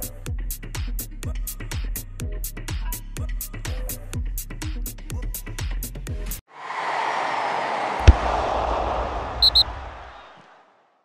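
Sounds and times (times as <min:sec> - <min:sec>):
rushing whoosh: 0:06.5 - 0:10.6
sharp boom: 0:07.9 - 0:10.2
short high blips: 0:09.4 - 0:09.7.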